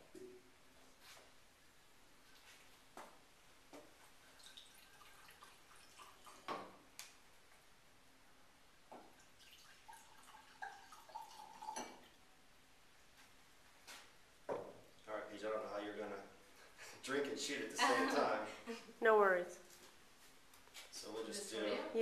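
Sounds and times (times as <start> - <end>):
wine pouring into a glass: 4.3 - 6.8, 9.1 - 12.2.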